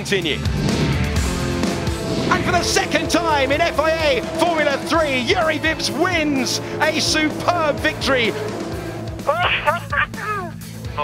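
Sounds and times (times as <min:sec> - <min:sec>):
background music: 0:00.0 - 0:11.0
driver's voice over radio: 0:02.3 - 0:08.4.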